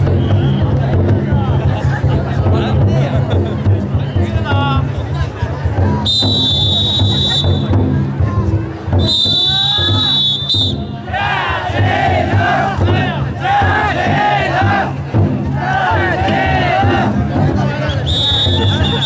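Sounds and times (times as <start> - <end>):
taiko drum beat: 0.0 - 19.0
shrill whistle blasts: 6.1 - 7.7, 9.0 - 10.9, 17.9 - 19.0
men chanting and shouting: 10.9 - 19.0.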